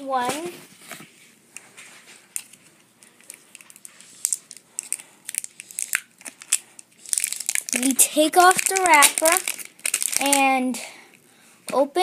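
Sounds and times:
plastic wrapping crinkling: 1.6s - 10.6s.

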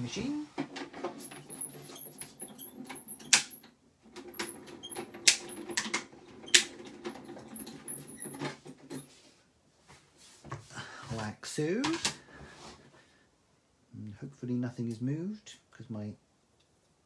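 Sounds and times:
high squeaks: 1.2s - 3.6s.

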